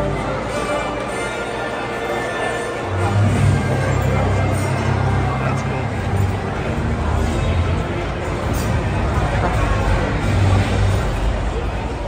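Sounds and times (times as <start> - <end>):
diners talking: 0.0 - 12.0.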